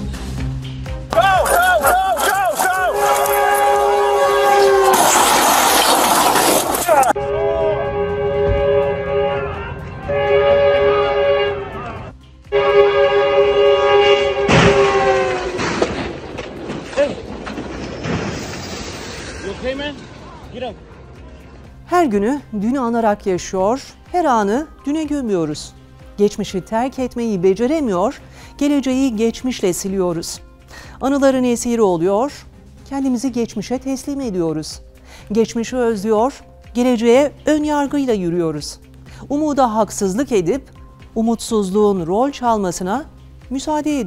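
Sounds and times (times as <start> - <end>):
train air horn blaring: 3.0 - 5.2, 7.2 - 15.8
loud crash: 4.6 - 7.1, 14.5 - 20.4.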